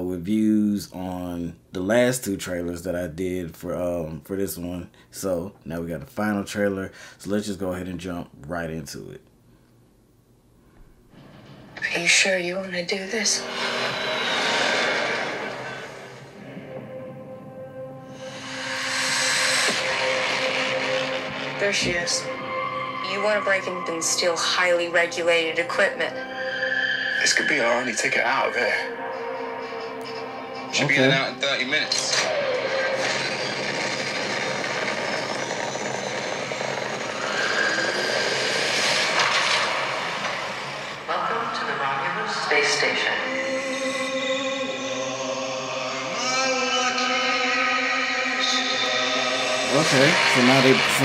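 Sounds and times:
noisy whoosh: 0:13.2 - 0:24.4, 0:32.3 - 0:41.6.

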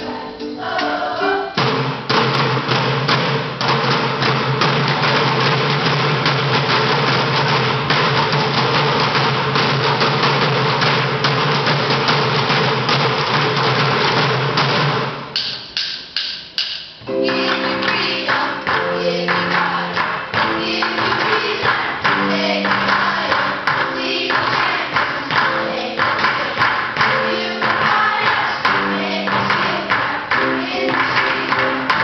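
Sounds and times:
drumming on plastic buckets: 0:00.8 - 0:32.0.

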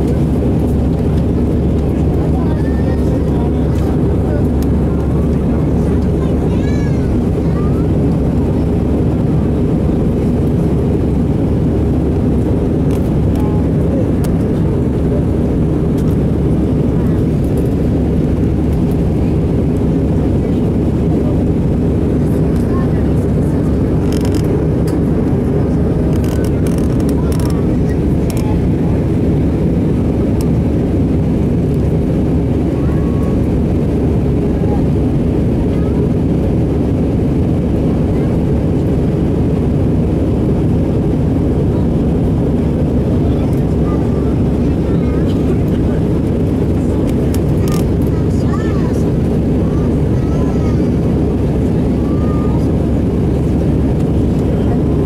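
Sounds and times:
jet engine and airflow in cabin: 0:00.0 - 0:55.0.

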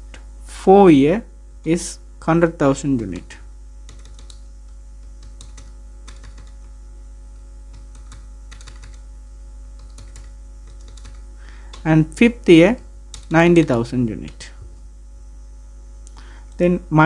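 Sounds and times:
steady low hum: 0:00.0 - 0:17.0
keyboard typing: 0:03.0 - 0:06.8, 0:07.7 - 0:09.1, 0:09.8 - 0:11.9, 0:13.1 - 0:14.5.

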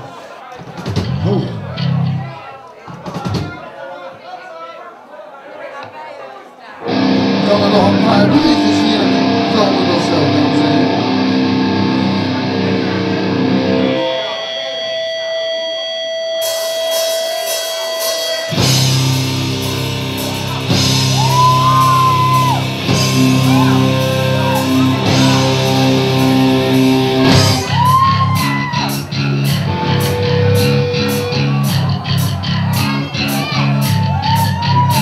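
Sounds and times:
rock band with electric guitars: 0:06.8 - 0:35.0.

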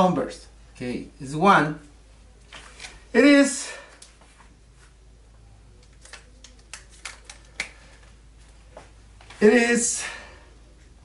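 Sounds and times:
marker cap plastic clicks: 0:05.8 - 0:07.8.

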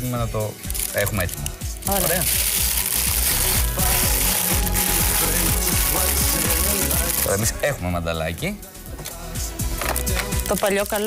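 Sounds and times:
background music with low beat: 0:00.0 - 0:11.0.

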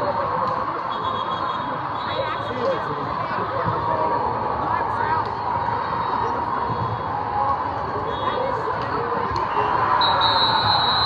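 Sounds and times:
murmur of many voices echoing: 0:00.0 - 0:11.0.

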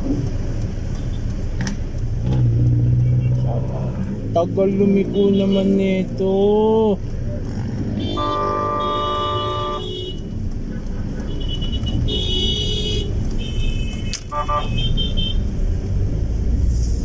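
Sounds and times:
car road and engine rumble: 0:00.0 - 0:17.0
vehicle horns honking: 0:05.0 - 0:05.9, 0:07.9 - 0:15.5.

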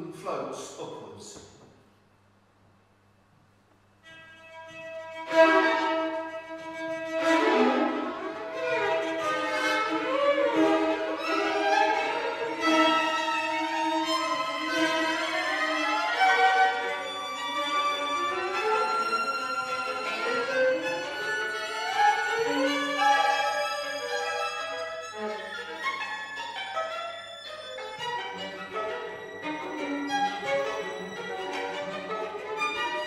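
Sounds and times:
string quartet playing: 0:04.0 - 0:33.0.

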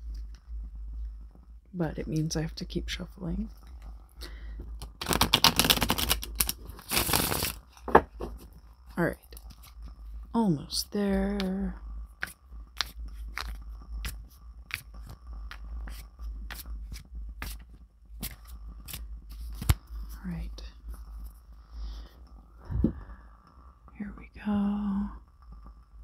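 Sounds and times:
steady low hum: 0:00.0 - 0:26.0
cards being shuffled: 0:04.8 - 0:07.7, 0:12.2 - 0:20.2
card rustling: 0:04.9 - 0:07.6, 0:18.2 - 0:19.9.

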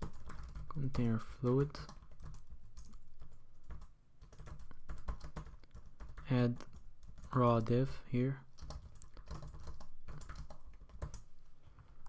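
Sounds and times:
computer keyboard typing: 0:00.0 - 0:07.4, 0:08.6 - 0:12.0.

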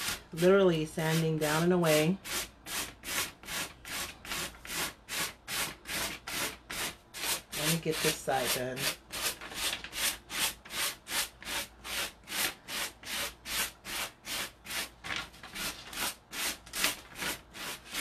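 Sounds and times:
sanding block rubbing on paper: 0:00.0 - 0:14.9, 0:15.6 - 0:18.0.

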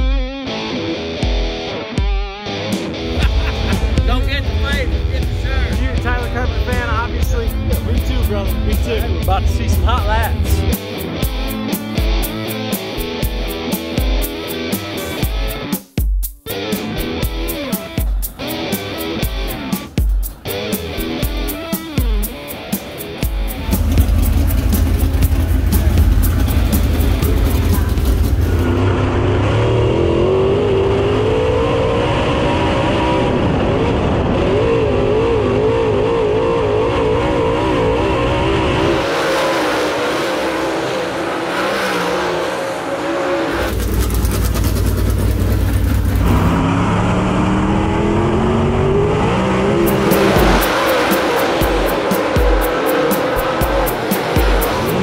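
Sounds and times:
race car engines running hard: 0:03.1 - 0:11.8, 0:16.8 - 0:55.0.

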